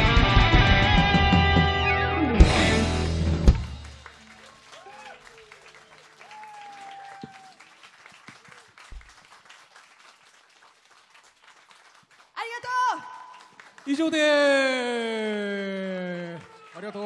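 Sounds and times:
audience clapping: 2.6s - 17.0s.

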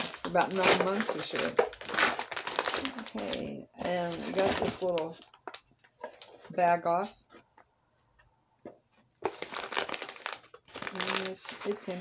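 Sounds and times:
packaging crinkling: 0.0s - 6.5s, 9.2s - 12.0s.

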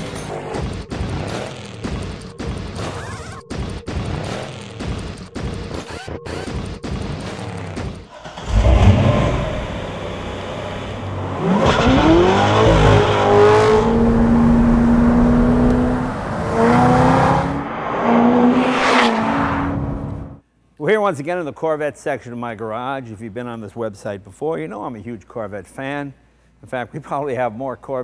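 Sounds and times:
car engine accelerating: 8.1s - 20.4s.

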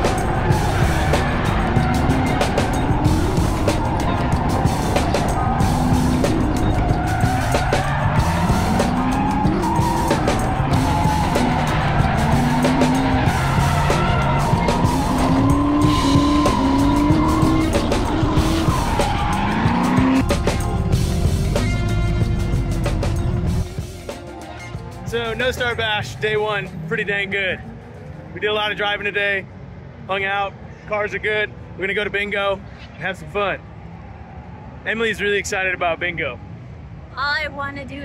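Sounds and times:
music: 0.0s - 27.7s
tyres squealing and skidding: 0.0s - 29.1s
car engines revving: 0.0s - 38.0s.

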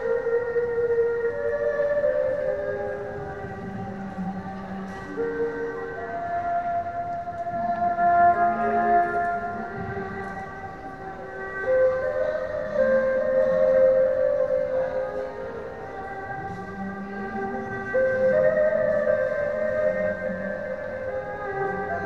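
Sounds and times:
slow haunting melody echoing: 0.0s - 22.0s.

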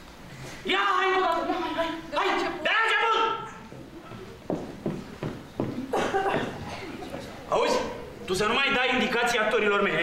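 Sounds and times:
footsteps of hard shoes on stage: 3.7s - 6.8s.

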